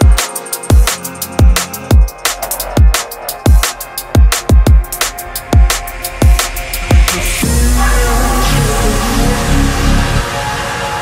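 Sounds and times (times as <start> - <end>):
drum and bass beat: 0.0 - 10.3
sub-bass line: 0.8 - 10.4.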